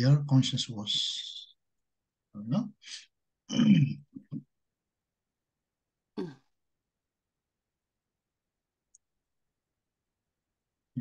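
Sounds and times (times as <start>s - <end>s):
man clearing his throat: 3.5s - 4.4s, 6.2s - 6.5s.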